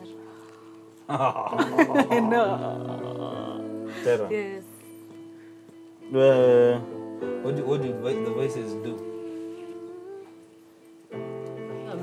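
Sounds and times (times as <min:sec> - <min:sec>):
person humming: 0:01.1 - 0:04.3, 0:08.9 - 0:10.4.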